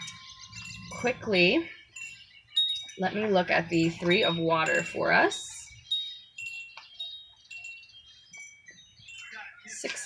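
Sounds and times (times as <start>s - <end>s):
wind chimes ringing: 0.0s - 10.0s.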